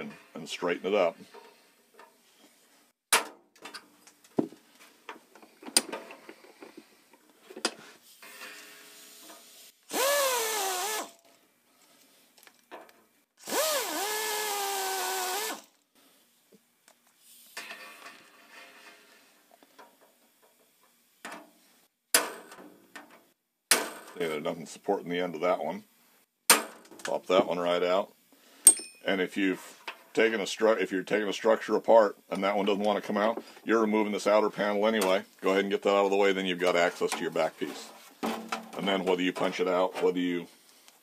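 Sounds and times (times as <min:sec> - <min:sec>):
air drill drilling rivet: 0:09.9 - 0:11.2, 0:13.4 - 0:15.7.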